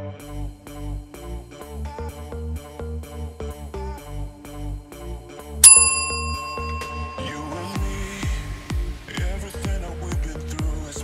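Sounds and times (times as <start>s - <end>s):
background music with steady beat: 0.0s - 11.0s
timer bell ding: 5.6s - 8.4s.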